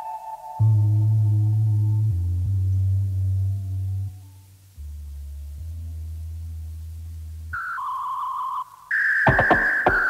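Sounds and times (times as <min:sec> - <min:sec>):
low electronic drone: 0:00.0 - 0:07.6.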